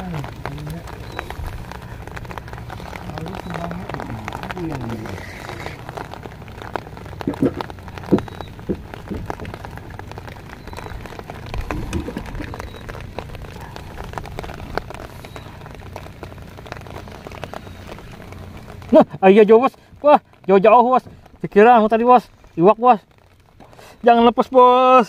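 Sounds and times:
steady rain falling: 0.0s - 25.0s.

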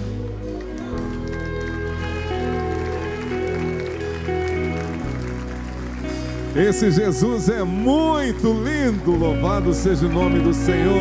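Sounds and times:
soft keyboard chords over bass: 0.0s - 11.0s.

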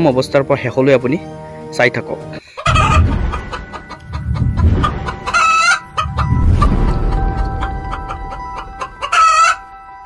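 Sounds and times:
chicken calls: 2.4s - 9.8s
low rumble: 2.8s - 9.0s.

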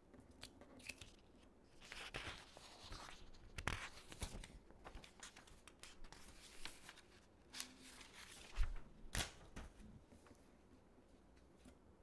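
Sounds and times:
paper sheets rustling: 1.8s - 10.4s.

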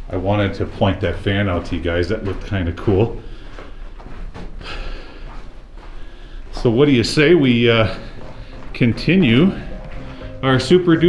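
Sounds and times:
breathing close to microphone: 3.2s - 6.7s, 7.9s - 8.7s, 9.5s - 10.4s.

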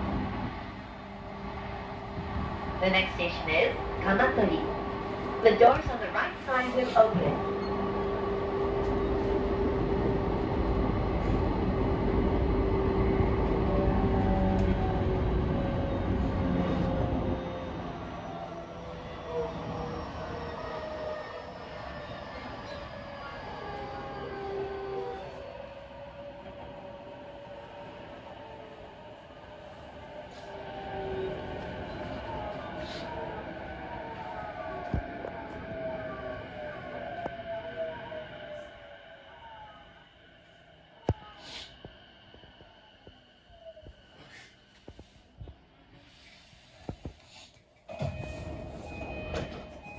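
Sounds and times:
train wheel and rail noise: 0.0s - 49.9s.

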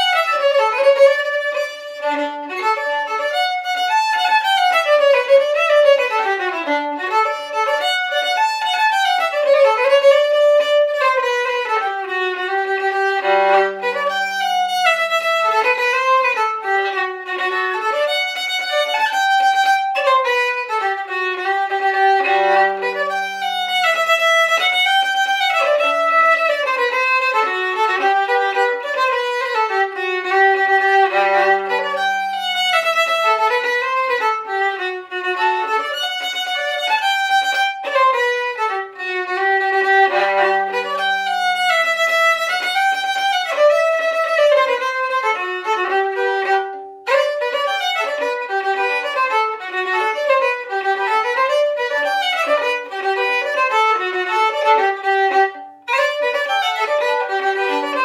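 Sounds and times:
solo fiddle dance tune: 0.0s - 58.0s.

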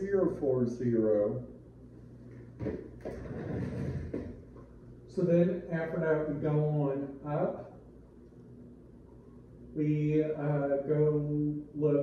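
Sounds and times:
soft knocks: 2.6s - 4.4s.

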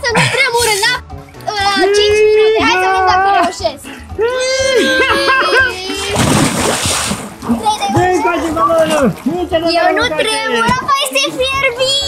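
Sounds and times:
big splash into pool: 6.1s - 7.5s.

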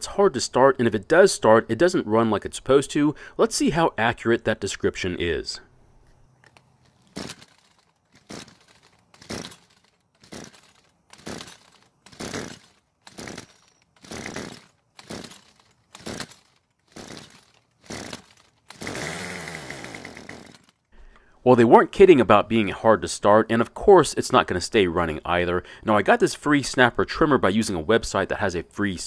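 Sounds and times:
starter rope pulls cranking: 6.4s - 20.9s
string trimmer engine running: 10.2s - 20.7s.

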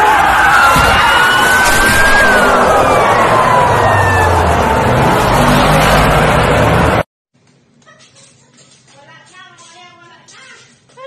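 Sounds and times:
road noise rushing: 0.0s - 7.1s.

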